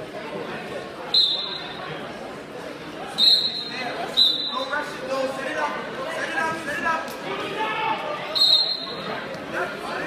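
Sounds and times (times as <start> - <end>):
voices in gym: 0.0 - 10.0
referee's whistle blasts: 1.1 - 1.8, 3.2 - 4.7, 8.3 - 9.1.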